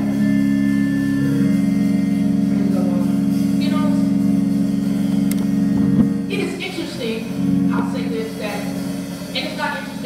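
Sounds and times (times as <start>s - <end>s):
organ and keyboard chords: 0.0s - 10.0s.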